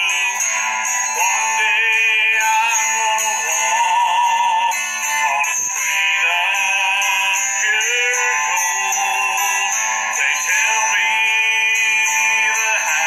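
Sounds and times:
man singing: 0.0 - 13.0.

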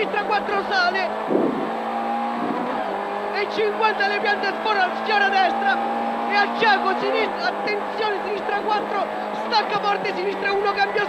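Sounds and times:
rally car engine running hard: 0.0 - 11.0.

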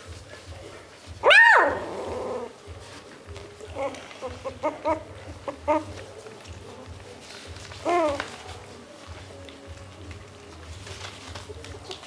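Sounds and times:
puppy whimpering yips: 1.2 - 2.5, 3.7 - 6.0, 7.8 - 8.4
puppy yelp: 1.2 - 2.5, 3.8 - 6.0
puppies squabbling: 3.6 - 6.2.

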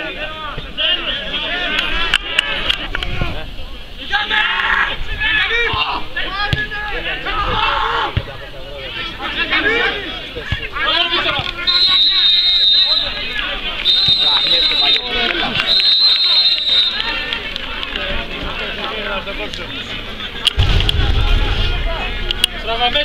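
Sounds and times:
crowd chatter: 0.0 - 23.0
referee's whistle blasts: 11.6 - 17.1
low rumble on microphone: 20.6 - 22.7.

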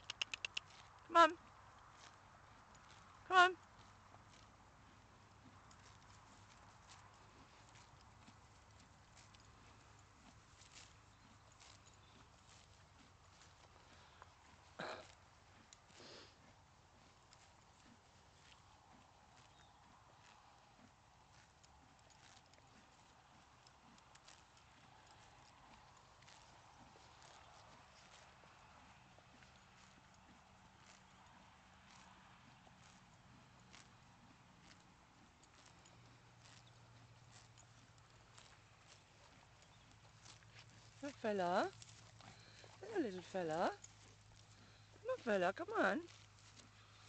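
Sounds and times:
horses moving and grazing: 0.0 - 47.0.

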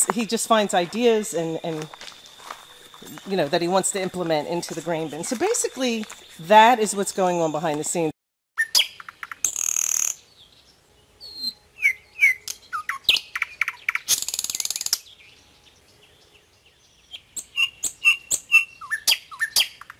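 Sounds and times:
footsteps crunching on gravel: 0.0 - 8.1
songbirds chirping: 0.0 - 19.9.

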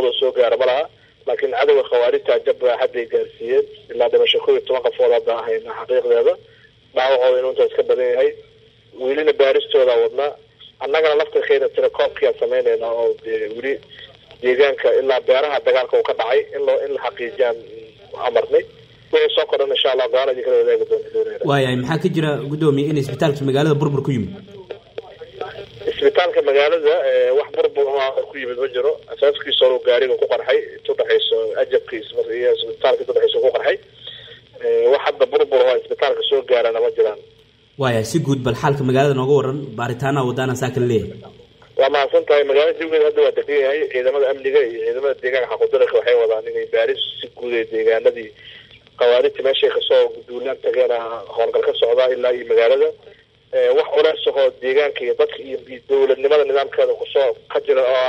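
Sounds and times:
man talking over phone line: 0.0 - 6.4, 9.0 - 37.2, 37.8 - 53.0, 53.6 - 58.0
person talking: 21.4 - 24.6, 37.8 - 41.5.

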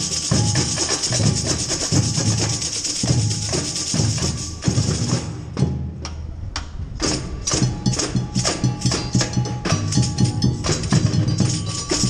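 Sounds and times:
percussion band funk groove: 0.0 - 12.0.

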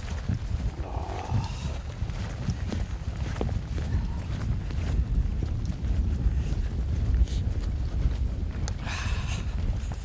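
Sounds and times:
footsteps on turf: 0.0 - 9.0
wind buffeting microphone: 0.0 - 10.0.

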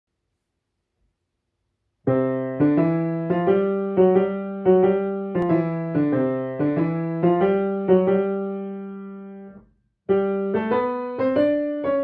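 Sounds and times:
grand piano played slowly: 2.1 - 12.0.

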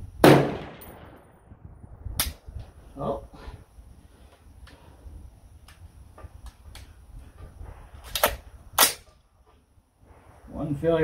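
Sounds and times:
rifle handling clicks: 8.0 - 9.2.

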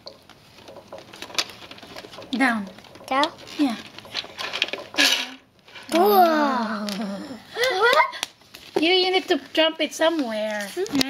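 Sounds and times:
plastic pieces clattering on wood floor: 0.0 - 6.1.

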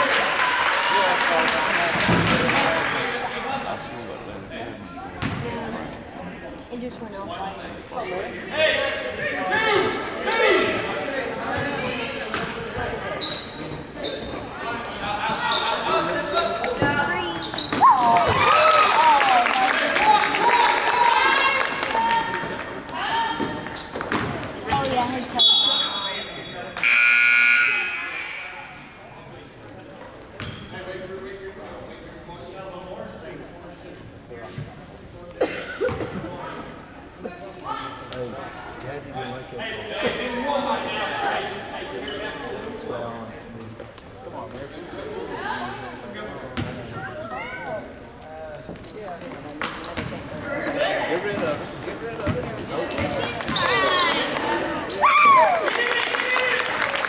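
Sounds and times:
shrill buzzer tone: 26.8 - 28.2.

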